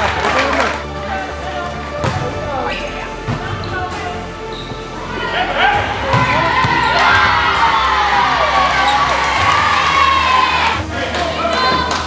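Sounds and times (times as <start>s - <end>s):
background music: 0.0s - 12.0s
players shouting and cheering: 0.0s - 12.0s.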